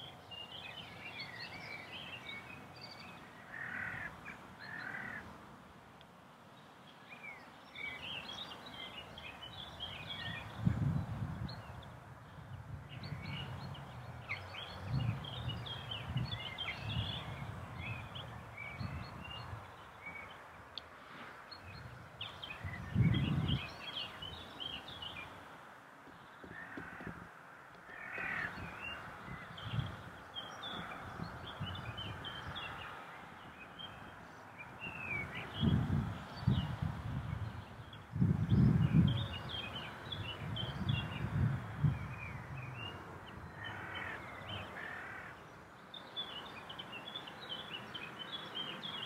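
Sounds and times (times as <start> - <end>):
songbirds chirping: 0.0 - 49.0
crow cawing: 3.5 - 4.1, 4.7 - 5.2, 26.5 - 27.3, 27.9 - 28.6, 44.8 - 45.4.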